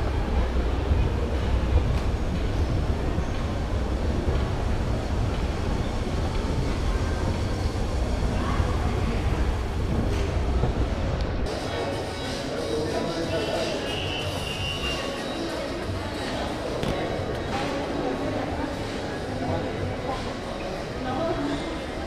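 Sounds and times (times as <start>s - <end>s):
crowd murmur: 0.0s - 22.0s.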